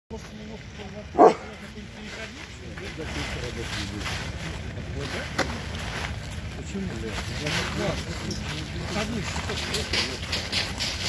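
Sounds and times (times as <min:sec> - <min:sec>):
dog barking: 0:01.1 - 0:01.6.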